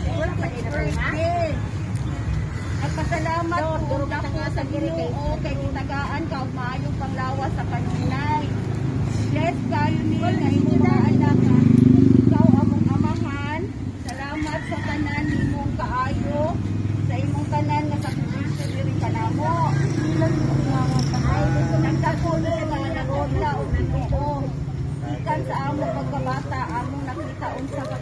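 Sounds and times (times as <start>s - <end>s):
people talking: 0.0s - 1.7s, 2.8s - 8.6s, 9.3s - 28.0s.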